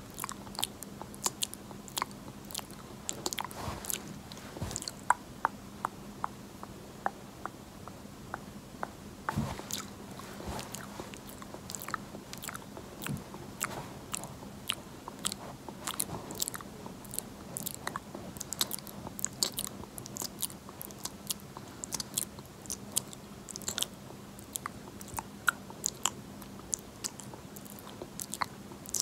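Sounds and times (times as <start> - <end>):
faint steady hum: 0.0 - 29.0
wet mouth clicks and smacks: 20.2 - 29.0.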